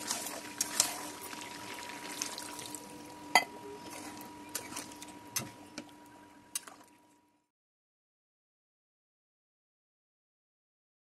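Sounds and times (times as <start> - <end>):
water pouring into a metal pan: 0.0 - 2.8.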